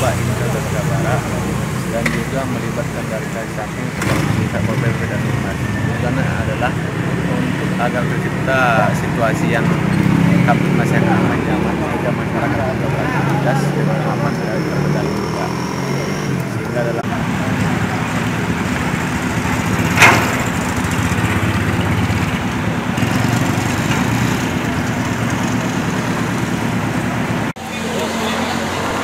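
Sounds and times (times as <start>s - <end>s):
indistinct background voices: 0.0s - 20.5s
motor vehicle engines rumbling: 0.0s - 29.0s
sharp knock: 19.8s - 20.7s.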